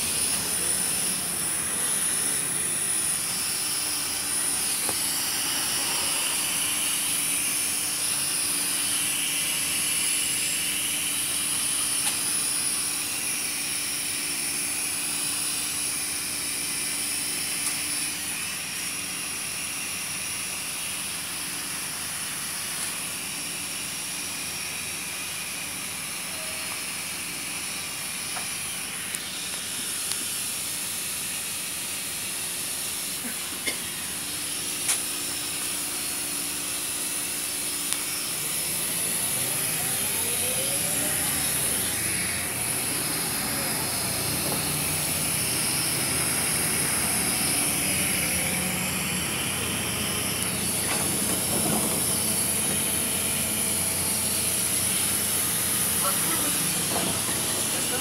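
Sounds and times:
whine rising in pitch: 0.0s - 58.0s
bus engine and road noise: 38.4s - 58.0s.

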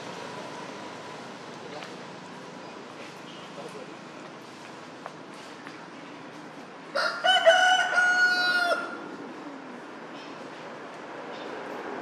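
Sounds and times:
rooster crowing: 7.0s - 9.0s.

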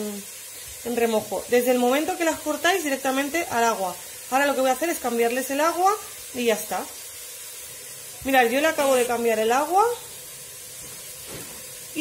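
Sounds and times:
meat sizzling in a pot: 0.0s - 12.0s.

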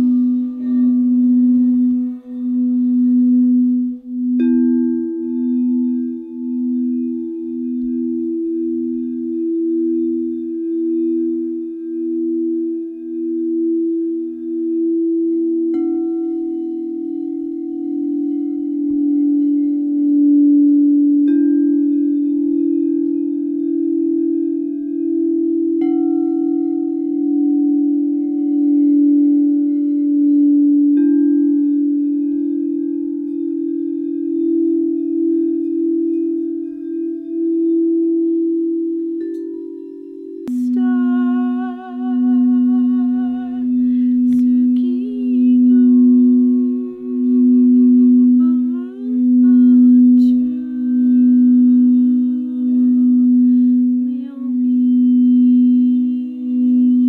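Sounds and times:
singing bowls ringing: 0.0s - 57.0s.

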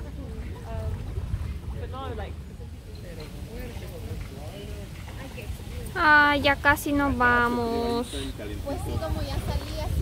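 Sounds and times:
people's voices at a pool: 0.0s - 10.0s
wind rumble on microphone: 0.0s - 10.0s.

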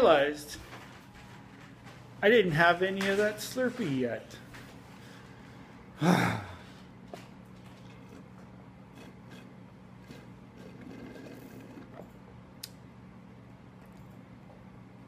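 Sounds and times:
man sighing: 6.0s - 6.8s
slurping through a straw: 9.0s - 12.0s.

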